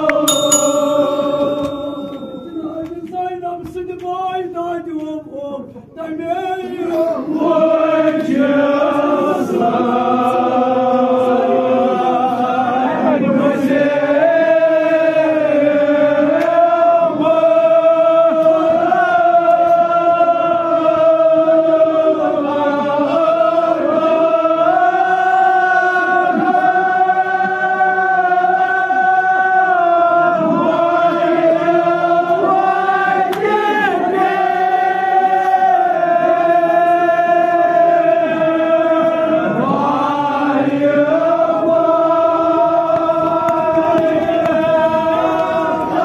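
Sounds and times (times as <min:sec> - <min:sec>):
men chanting in long held notes: 0:06.7 - 0:46.0.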